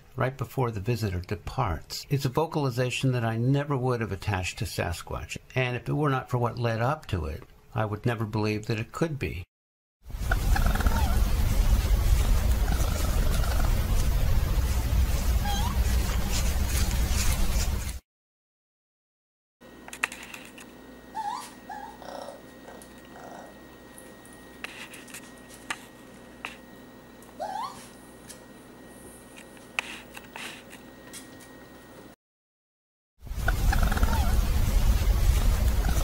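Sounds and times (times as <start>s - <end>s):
low rumble of recording noise: 10.1s - 17.9s, 33.3s - 36.0s
raccoon wavering call: 10.3s - 11.3s, 33.5s - 34.5s
whining animal calls: 10.3s - 11.3s, 15.4s - 15.9s, 21.1s - 23.6s, 27.4s - 28.0s, 33.5s - 34.5s, 35.8s - 36.0s.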